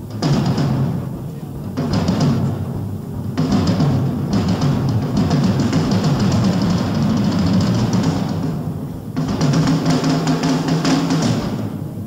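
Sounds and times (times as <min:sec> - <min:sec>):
drum rolls on toms: 0:00.0 - 0:12.0
snare and cymbals: 0:00.0 - 0:12.0.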